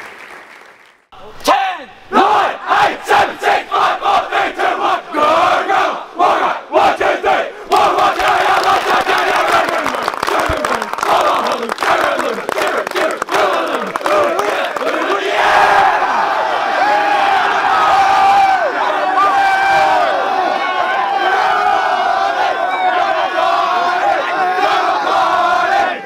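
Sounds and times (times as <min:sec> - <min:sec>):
group of boys chanting war cry: 0:02.1 - 0:26.0.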